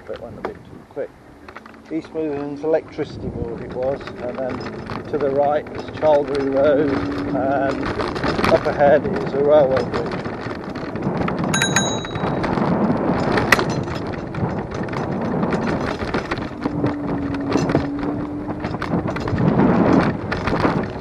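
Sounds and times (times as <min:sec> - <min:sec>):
wheels rumbling over pavement: 0:00.0 - 0:21.0
wind buffeting microphone: 0:00.0 - 0:21.0
bell ringing: 0:11.6 - 0:12.6.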